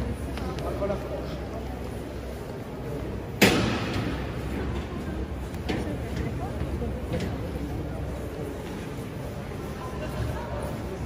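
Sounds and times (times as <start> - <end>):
murmur in stone hall: 0.0 - 11.0.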